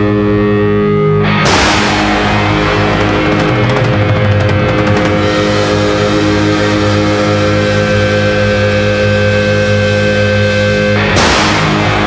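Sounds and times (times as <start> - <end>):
bass guitar: 0.0 - 12.0
distorted electric guitar chord: 0.0 - 12.0.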